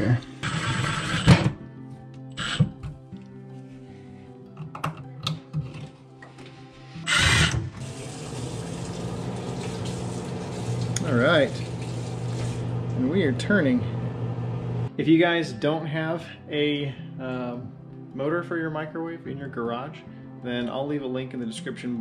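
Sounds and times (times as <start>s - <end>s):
microwave humming: 7.1s - 14.9s.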